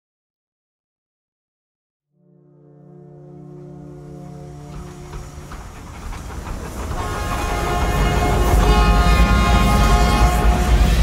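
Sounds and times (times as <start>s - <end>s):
steam locomotive chuffing: 3.8s - 11.0s.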